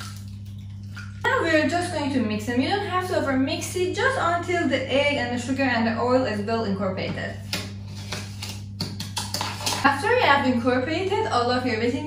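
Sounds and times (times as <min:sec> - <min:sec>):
low electrical hum: 0:00.0 - 0:12.0
spoon stirring in mixing bowl: 0:07.2 - 0:10.0.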